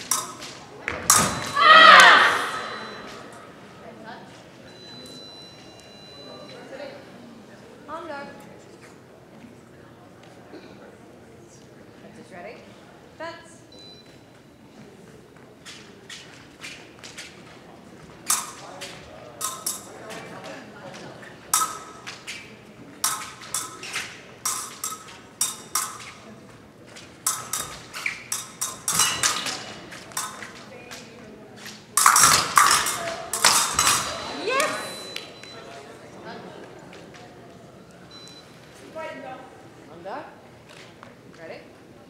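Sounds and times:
fencing blades clashing: 0:00.0 - 0:03.5, 0:18.2 - 0:20.5, 0:21.4 - 0:35.3
person shouting: 0:01.5 - 0:02.8.

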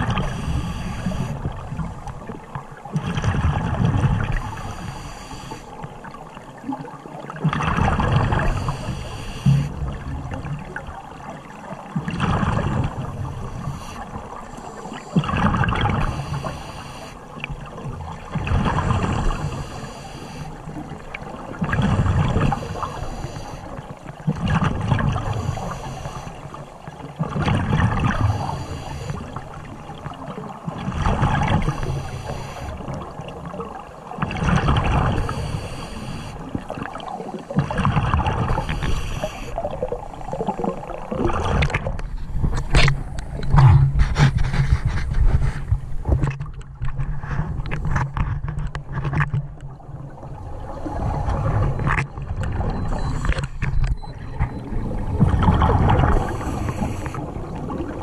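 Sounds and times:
diver breathing through regulator: 0:00.0 - 0:01.4, 0:04.5 - 0:05.8, 0:08.3 - 0:09.8, 0:13.3 - 0:17.2, 0:18.8 - 0:20.7, 0:21.8 - 0:23.9, 0:25.2 - 0:26.6, 0:28.1 - 0:29.4, 0:31.6 - 0:33.0, 0:35.0 - 0:36.6, 0:37.6 - 0:39.9, 0:55.9 - 0:57.4
exhaled bubbles rushing: 0:00.0 - 0:04.7, 0:06.4 - 0:09.0, 0:15.1 - 0:16.5, 0:27.2 - 0:45.4, 0:49.6 - 0:58.0.

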